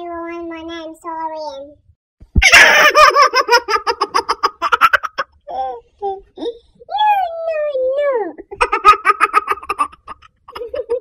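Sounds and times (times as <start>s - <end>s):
woman giggling: 10.5s - 11.0s.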